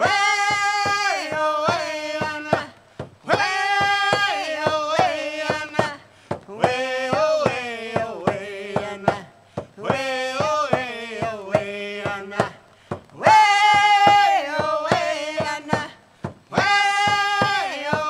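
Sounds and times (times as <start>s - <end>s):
steady drumbeat: 0.0s - 18.0s
voices singing: 0.0s - 18.0s.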